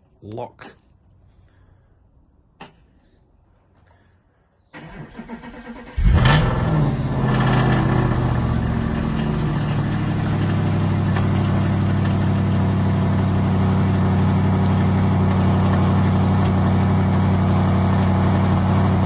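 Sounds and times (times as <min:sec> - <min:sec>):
car engine revving and idling: 0:05.2 - 0:19.0.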